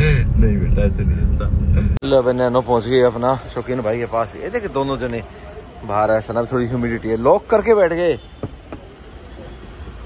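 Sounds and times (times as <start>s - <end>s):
low rumble of traffic: 0.0s - 10.0s.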